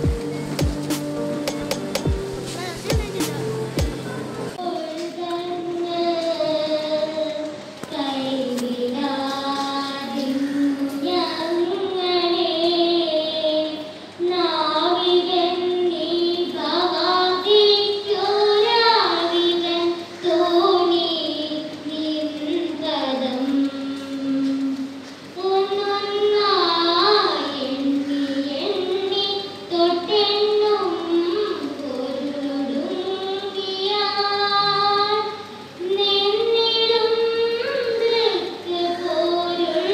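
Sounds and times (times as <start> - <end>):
children singing slow melody: 0.0 - 39.9.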